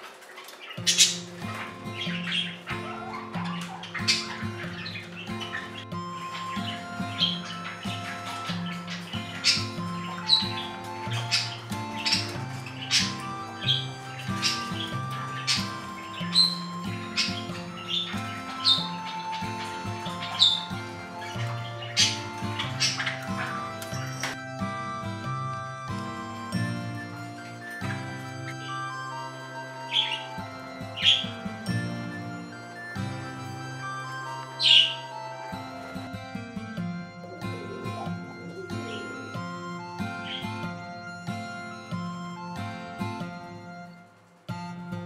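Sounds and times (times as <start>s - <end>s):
budgerigars chirping and squawking: 0.0s - 44.0s
background music: 0.0s - 45.0s.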